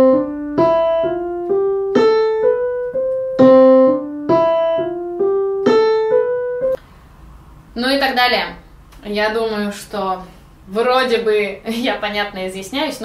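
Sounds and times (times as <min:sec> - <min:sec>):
electronic keyboard piano melody: 0:00.0 - 0:06.8.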